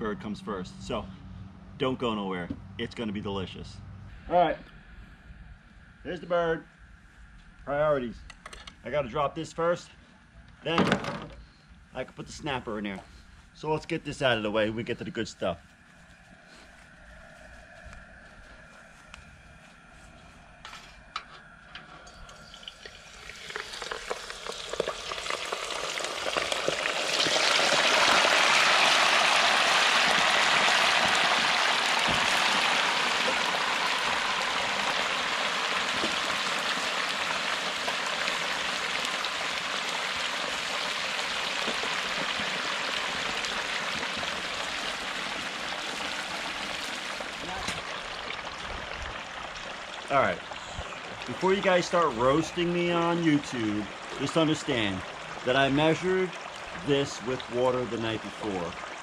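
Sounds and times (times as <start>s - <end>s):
turkey frying in hot oil: 22.2s - 59.0s.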